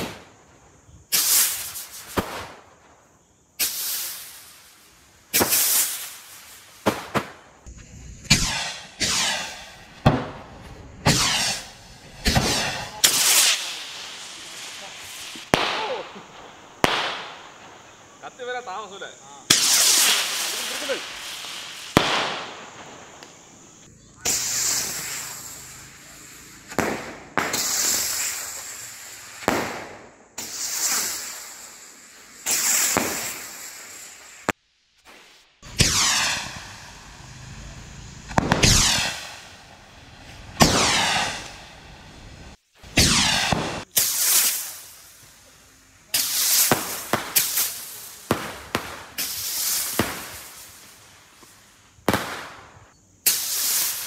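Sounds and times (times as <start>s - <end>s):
rockets whooshing: 0.0s - 54.0s.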